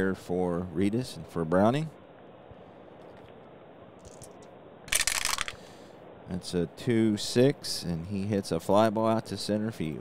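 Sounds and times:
dice clattering in wooden box: 4.9 - 5.6.

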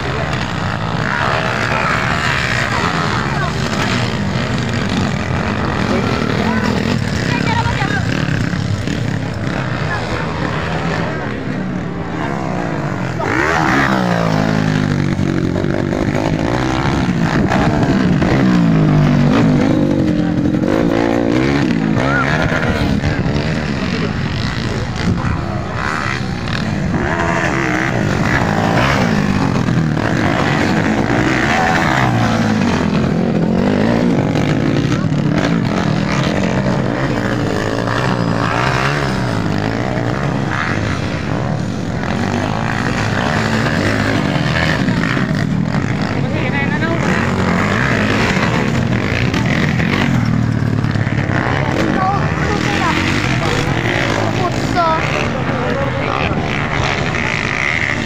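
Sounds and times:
motocross bike engines revving: 0.0 - 58.0.

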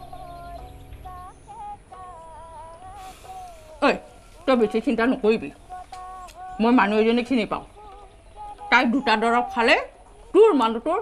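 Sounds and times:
soft slow melody: 0.0 - 10.4
woman speaking: 3.8 - 5.6, 6.6 - 7.7, 8.7 - 11.0.

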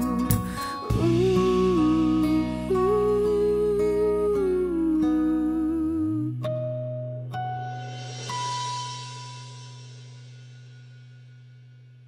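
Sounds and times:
fingerpicked acoustic guitar: 0.0 - 10.5.

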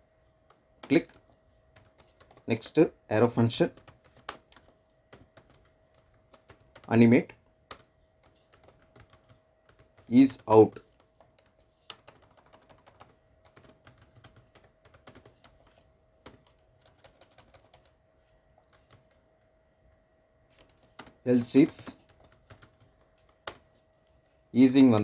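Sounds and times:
faint steady hum: 0.0 - 25.0
keyboard typing: 0.4 - 2.6, 3.5 - 19.5, 20.5 - 23.8, 24.6 - 25.0.

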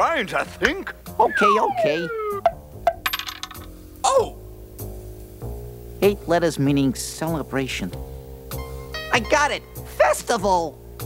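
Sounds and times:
falling whistle tone: 1.2 - 2.5.

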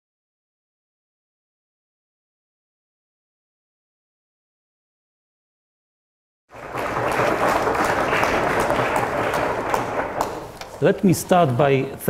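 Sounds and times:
audience applauding: 6.5 - 11.3.

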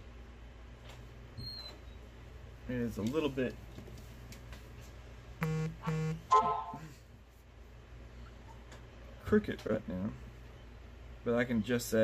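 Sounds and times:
buzzy electronic beeps: 5.4 - 6.3.

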